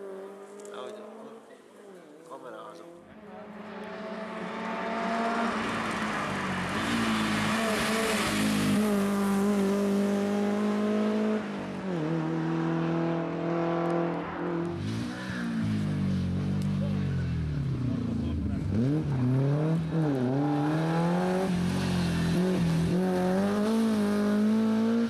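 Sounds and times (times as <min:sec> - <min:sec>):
rally car engine accelerating: 0:00.0 - 0:25.0.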